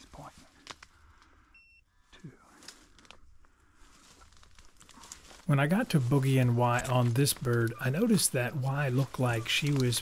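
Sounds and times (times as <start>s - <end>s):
footsteps through dry leaves: 3.7s - 10.0s.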